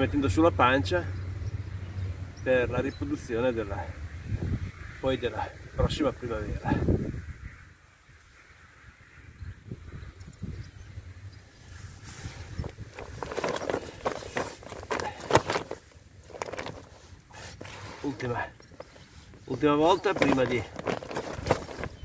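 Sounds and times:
wind rumble on microphone: 3.8 - 17.0
handling rustles and knocks: 11.8 - 22.0.

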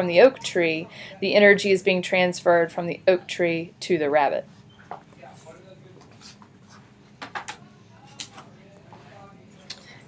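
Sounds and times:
faint murmur of woman's voice: 0.0 - 4.5.

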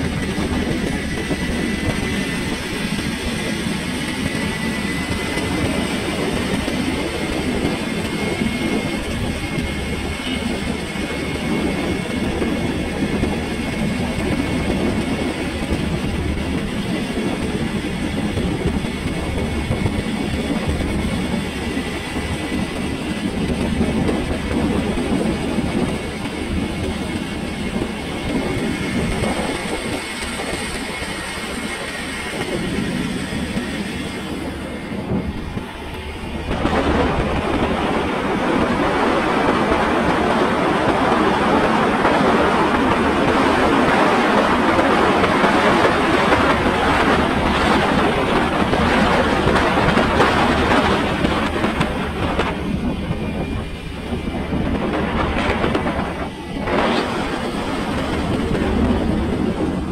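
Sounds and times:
vehicle road noise rumble: 0.0 - 59.9.

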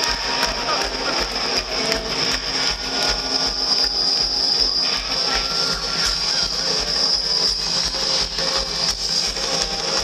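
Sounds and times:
concert crowd noise: 0.0 - 10.0
scattered clapping: 0.0 - 10.0.

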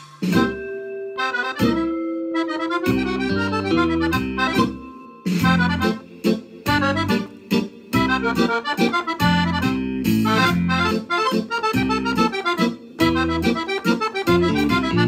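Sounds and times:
piano accordion playing a mazurka: 0.3 - 15.0.

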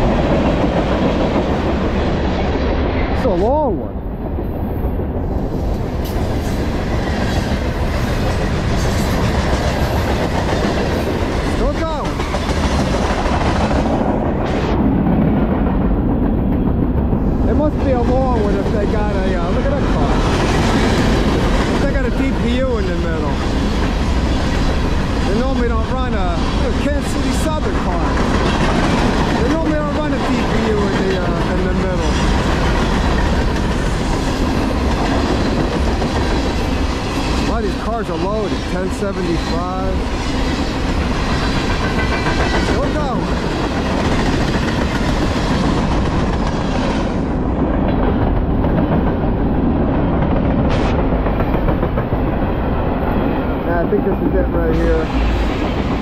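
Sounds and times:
train wheels rumbling on rail: 0.0 - 56.0.

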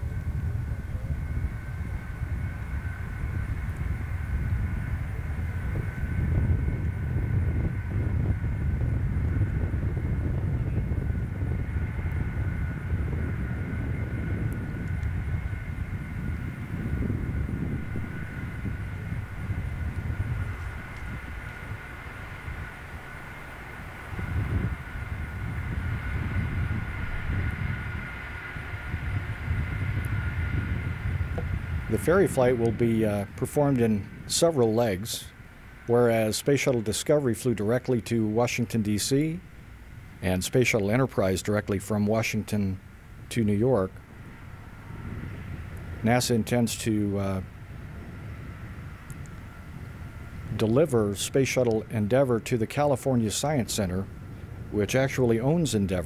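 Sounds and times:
jet engines rumbling: 0.0 - 56.0
thin steady whine: 0.0 - 56.0.

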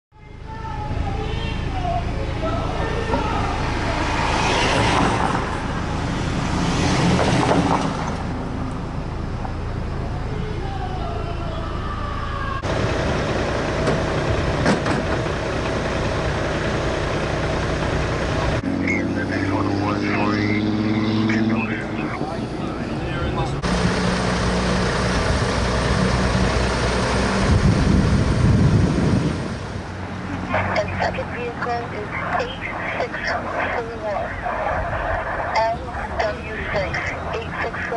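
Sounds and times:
traffic rumble: 0.1 - 37.9
indistinct voices: 9.9 - 12.7, 18.6 - 23.7, 30.2 - 37.9.

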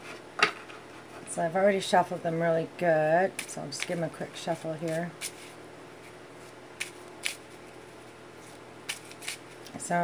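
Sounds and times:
cards being shuffled: 4.6 - 7.8, 8.4 - 9.8.

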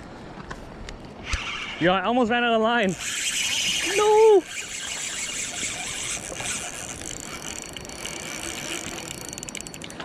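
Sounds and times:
fishing reel drag clicking: 1.2 - 1.9, 2.9 - 10.0.

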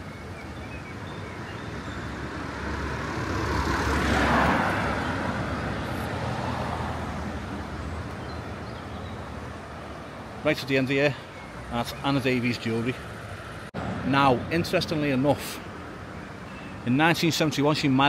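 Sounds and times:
motor vehicle passing by: 0.8 - 10.4.

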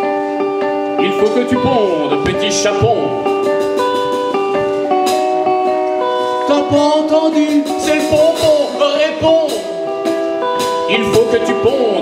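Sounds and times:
electric and acoustic guitars: 0.0 - 12.0.

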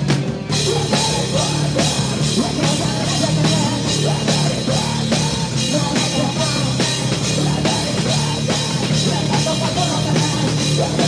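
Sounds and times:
drum kit beat: 0.0 - 11.0
rock band playing live: 0.0 - 11.0.

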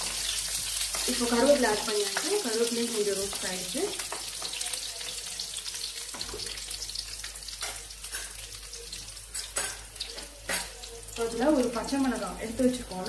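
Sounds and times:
garlic sizzling in hot oil: 0.0 - 13.0.

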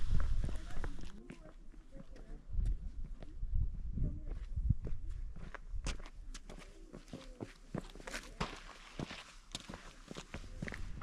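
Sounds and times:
footsteps on gritty rock: 5.4 - 11.0.

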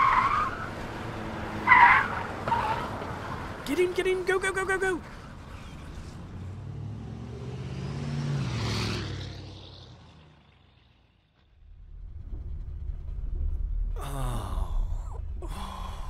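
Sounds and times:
van engine speeding past: 6.4 - 11.4
low rumble: 11.5 - 16.0.

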